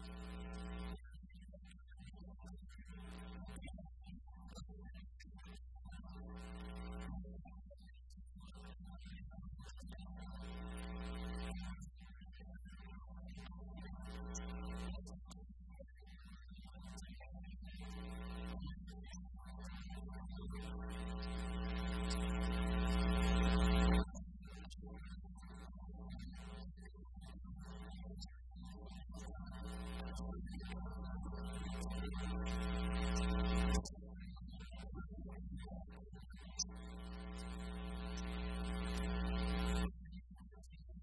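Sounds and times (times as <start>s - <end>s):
steady low hum: 17.8s - 24.8s, 29.0s - 40.0s.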